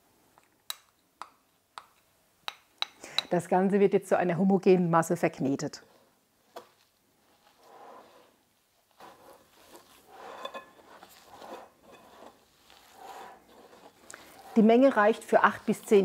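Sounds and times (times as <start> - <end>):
hands squishing potatoes: 6.4 - 16.0.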